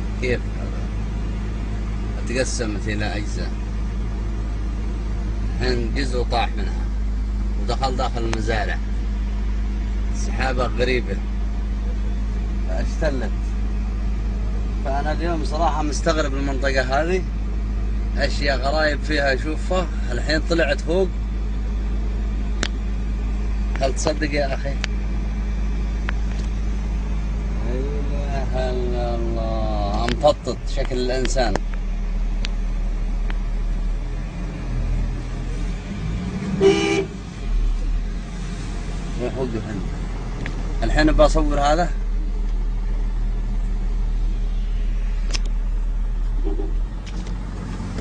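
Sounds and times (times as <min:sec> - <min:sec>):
car engine running: 0:00.0 - 0:48.0.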